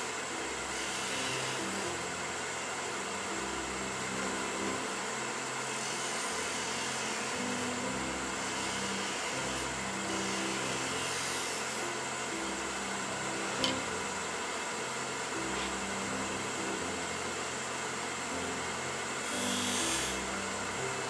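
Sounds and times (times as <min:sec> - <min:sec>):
wood lathe cutting hiss: 0:00.0 - 0:21.0.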